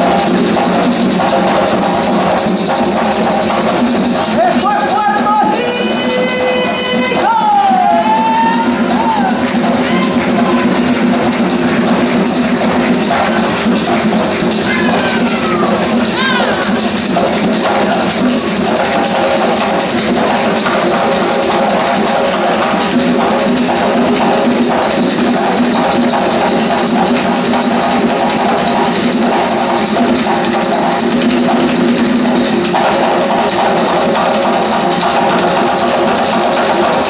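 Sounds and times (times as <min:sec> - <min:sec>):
hand-drumming on barrel drums: 0:00.0 - 0:37.0
person calling out: 0:14.7 - 0:16.8.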